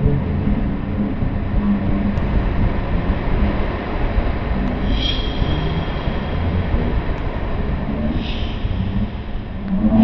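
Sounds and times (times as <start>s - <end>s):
dense low rumble: 0.0s - 10.0s.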